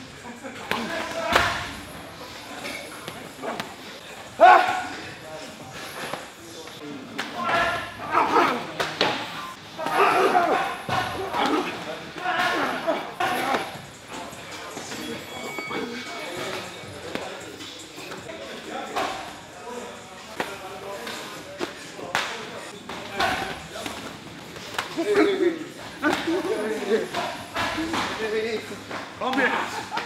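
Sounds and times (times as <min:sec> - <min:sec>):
men talking: 0:00.0 - 0:30.0
men laughing: 0:29.4 - 0:30.0.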